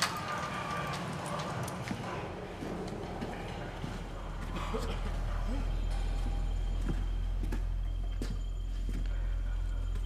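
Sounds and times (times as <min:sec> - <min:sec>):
footsteps and shuffling: 0:00.4 - 0:10.0.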